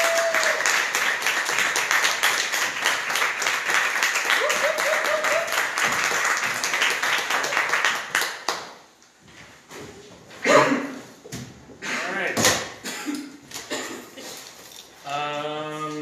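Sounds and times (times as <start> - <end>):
audience applauding: 0.0 - 8.8.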